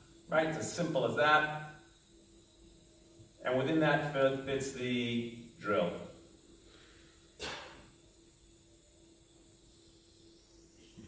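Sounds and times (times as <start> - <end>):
faint steady hum: 0.0 - 11.0
breath hiss near microphone: 6.2 - 8.1.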